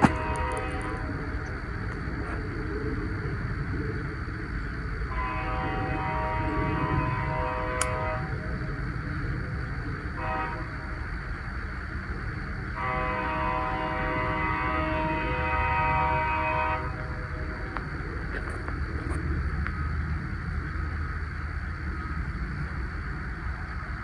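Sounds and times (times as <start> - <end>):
train horn blasts: 0.0 - 1.2, 5.1 - 8.4, 10.1 - 11.0, 12.7 - 17.1
steady low rumble: 0.0 - 24.0.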